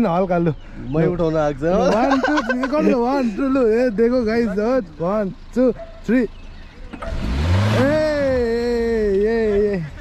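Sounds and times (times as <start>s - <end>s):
car engine revving: 6.5s - 10.0s
man shouting: 7.8s - 9.6s.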